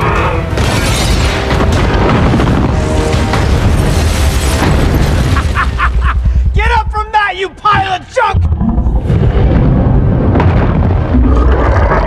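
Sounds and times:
booms and crashes: 0.5 - 6.6, 7.7 - 12.0
deep rumbling: 8.3 - 12.0.

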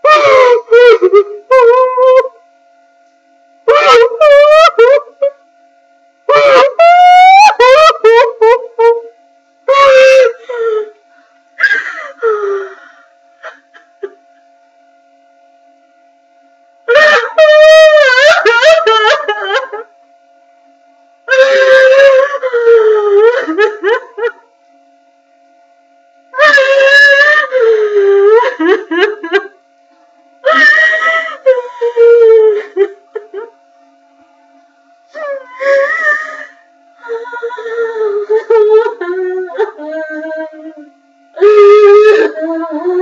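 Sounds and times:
woman crying wail: 0.0 - 2.4, 3.7 - 5.3, 6.3 - 9.1, 9.7 - 11.0, 11.6 - 12.8, 16.9 - 19.9, 21.3 - 24.4, 26.4 - 29.5, 30.4 - 33.5, 35.2 - 43.0
faint steady hum: 0.0 - 43.0.

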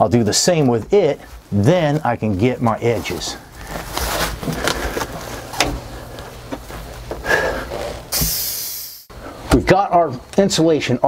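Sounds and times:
foil insulation rustling and crinkling: 0.0 - 8.1.

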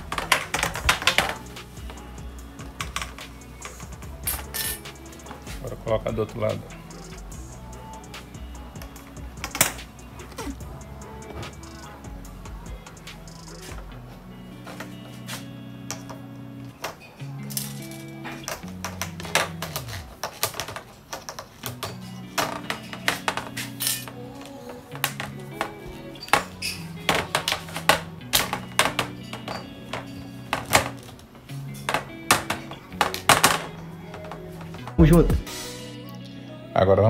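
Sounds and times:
background music with bassline: 0.0 - 20.3, 21.6 - 37.0.

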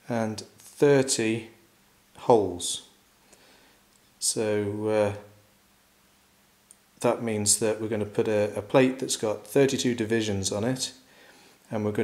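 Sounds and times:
man speaking: 0.0 - 1.6, 2.2 - 2.9, 4.2 - 5.4, 7.0 - 11.0, 11.7 - 12.0.

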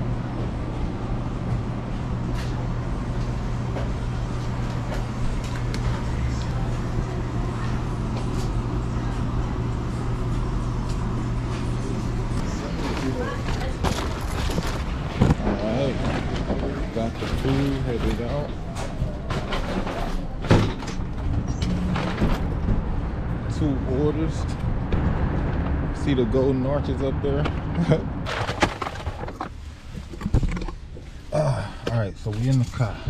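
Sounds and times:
steady low hum: 0.0 - 33.0
people talking: 11.6 - 14.0, 15.4 - 20.6, 23.5 - 24.6, 26.0 - 28.0, 31.4 - 33.0.

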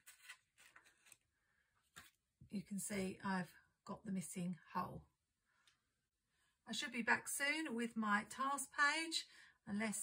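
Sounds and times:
paper rustling: 0.0 - 2.2.

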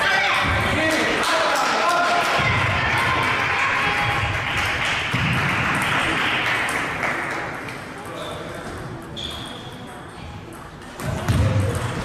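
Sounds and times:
steady hall noise: 0.0 - 12.0.

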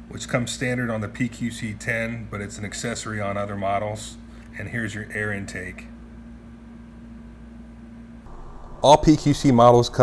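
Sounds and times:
room tone hum and hiss: 0.0 - 10.0
faint steady tone: 8.3 - 10.0.

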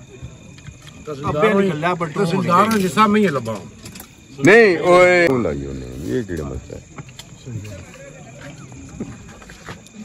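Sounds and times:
crickets chirring: 0.0 - 10.0
quieter voices: 0.0 - 10.0.

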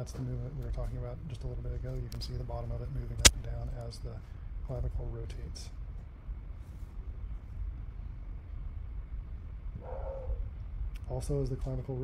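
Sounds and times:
low background rumble: 0.2 - 12.0.

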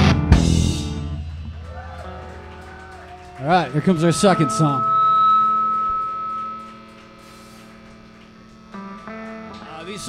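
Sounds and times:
faint amplifier hum: 0.0 - 10.0
held amplified note: 3.6 - 10.0.

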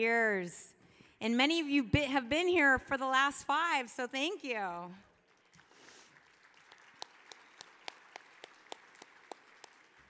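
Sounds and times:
faint audience applause: 5.1 - 10.0.

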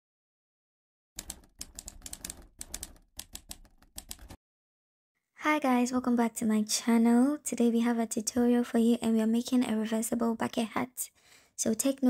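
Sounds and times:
keyboard typing clicks: 1.2 - 4.4.

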